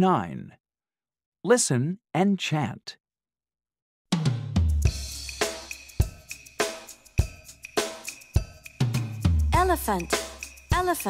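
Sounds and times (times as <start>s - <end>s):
drum kit beat: 4.1s - 11.0s
cymbals and hi-hat ringing: 4.9s - 11.0s.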